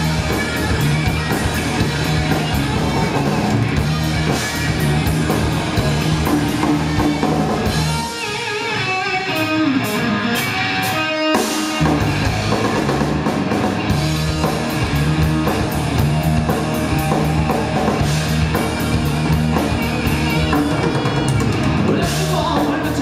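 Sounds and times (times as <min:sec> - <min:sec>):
bass guitar: 0:00.0 - 0:23.0
drum kit: 0:00.0 - 0:23.0
electric guitars with bent notes: 0:00.0 - 0:23.0.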